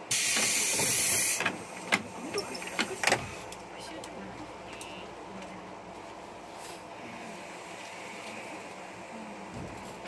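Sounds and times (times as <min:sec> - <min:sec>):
compressed air hiss: 0:00.1 - 0:01.8.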